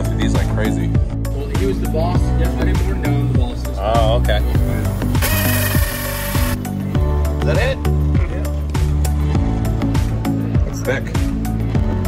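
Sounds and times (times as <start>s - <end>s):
hole saw drilling fiberglass: 5.1s - 6.6s.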